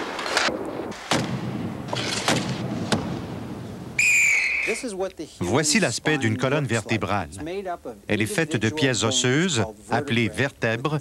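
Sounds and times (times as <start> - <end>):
players slamming into boards: 0.0 - 3.6
referee's whistle blast: 4.0 - 4.9.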